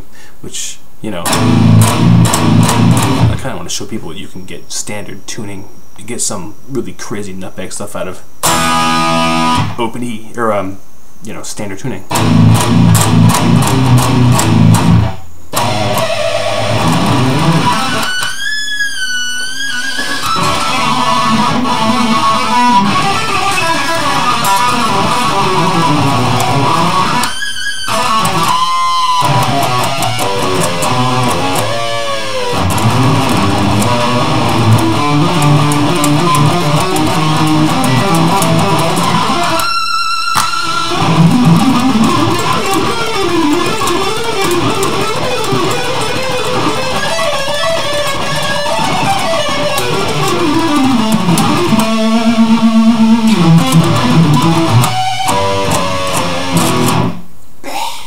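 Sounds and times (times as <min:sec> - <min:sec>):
electric guitar metal riffs: 0:01.1 - 0:03.8, 0:08.4 - 0:10.0, 0:12.0 - 0:57.4.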